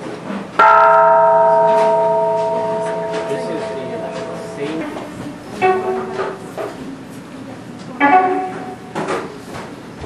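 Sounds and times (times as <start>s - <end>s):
metal bell ringing: 0.6s - 6.5s.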